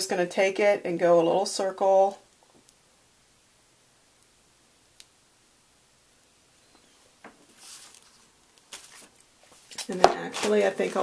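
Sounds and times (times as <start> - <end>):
piping bag put on stone counter: 7.4 - 11.0.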